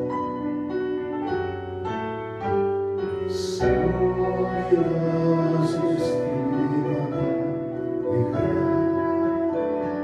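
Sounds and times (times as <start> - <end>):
slow piano melody: 0.0 - 10.0.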